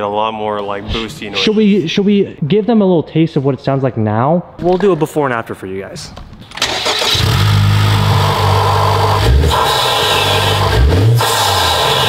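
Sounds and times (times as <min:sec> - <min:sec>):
car engine starting and revving: 0:06.5 - 0:12.0.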